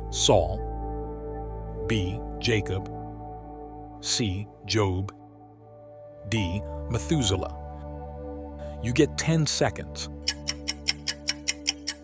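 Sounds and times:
soft background music drone: 0:00.0 - 0:12.0
clock-like timer ticking: 0:10.1 - 0:12.0.

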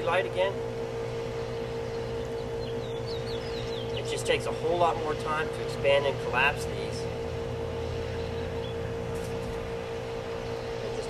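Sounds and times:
low hum: 0:00.0 - 0:11.0
steady held tone: 0:00.0 - 0:11.0.

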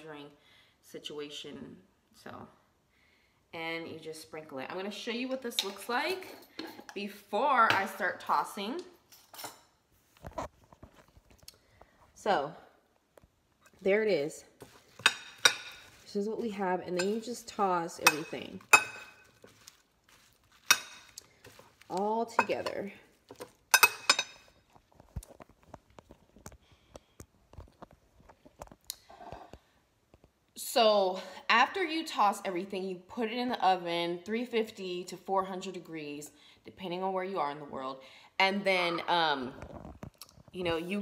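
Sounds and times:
sprouts tossed in a bowl: 0:14.6 - 0:23.6
metal spoon clinking ceramic bowl: 0:15.0 - 0:16.0, 0:16.9 - 0:17.3, 0:18.0 - 0:19.3, 0:20.6 - 0:21.6, 0:22.4 - 0:22.8, 0:23.7 - 0:24.5.

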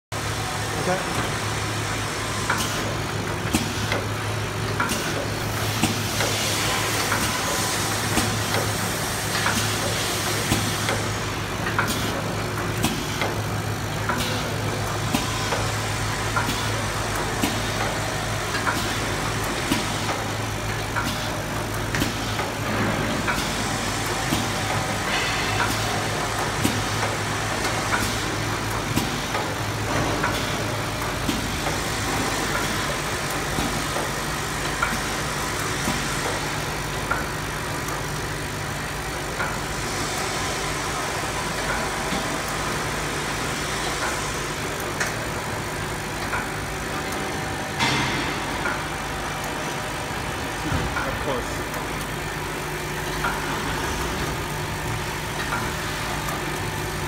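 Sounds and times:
machine motor hum: 0:00.2 - 0:57.0.

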